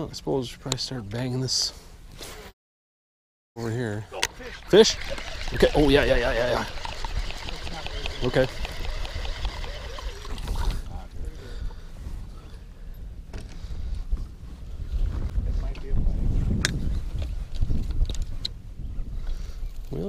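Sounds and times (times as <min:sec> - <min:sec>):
river water against boat hull: 0:04.2 - 0:10.8
wind rumbling on microphone: 0:04.4 - 0:20.0.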